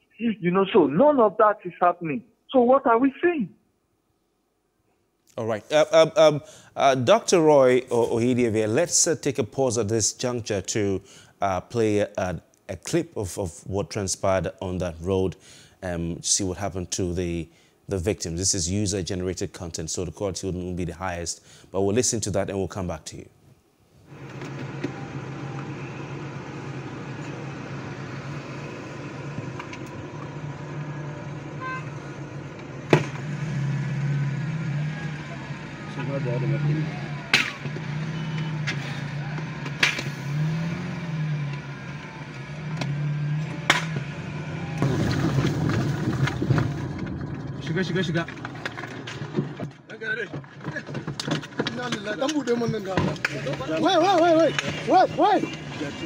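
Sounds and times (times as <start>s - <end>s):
car engine and road noise: 24.0s - 50.2s, 51.2s - 56.0s
people calling out: 53.5s - 56.0s.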